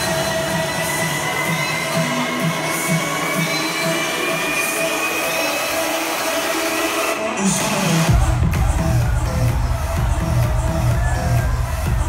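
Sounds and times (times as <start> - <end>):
electronic dance music: 0.0 - 12.0
pulsing beat: 8.1 - 12.0.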